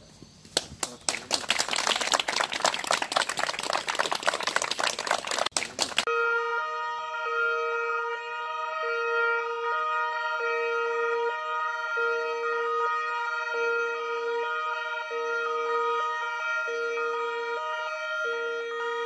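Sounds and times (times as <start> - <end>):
crowd clapping: 0.6 - 6.1
two-tone police sirens: 6.0 - 19.0.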